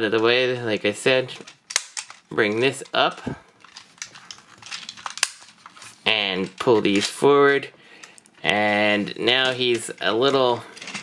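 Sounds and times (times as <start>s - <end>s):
plastic toy parts clicking: 1.3s - 8.5s.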